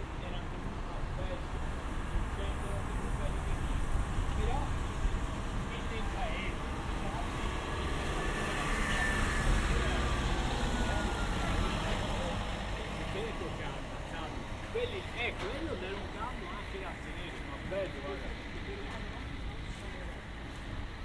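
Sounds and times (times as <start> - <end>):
cars driving slowly past: 0.0 - 21.0
faint voices of people: 2.2 - 21.0.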